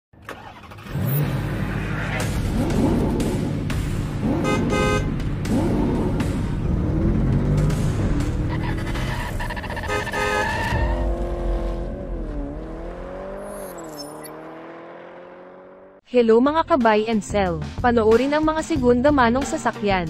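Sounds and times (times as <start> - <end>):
car engine revving: 0.3 - 16.0
tires squealing: 8.2 - 14.6.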